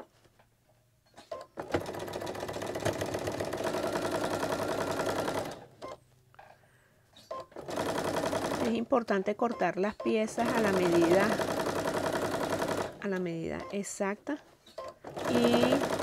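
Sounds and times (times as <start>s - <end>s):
sewing machine stitching: 1.2s - 6.0s, 7.3s - 8.9s, 10.0s - 13.8s, 14.8s - 16.0s.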